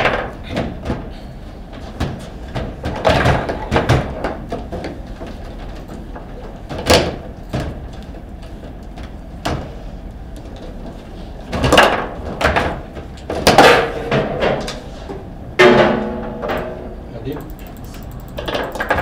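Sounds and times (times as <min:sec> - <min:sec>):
foosball ball and rods knocking: 0:00.0 - 0:01.1, 0:01.8 - 0:09.7, 0:10.4 - 0:17.0, 0:18.3 - 0:19.0
loud metal clank with ringing: 0:15.6 - 0:17.0.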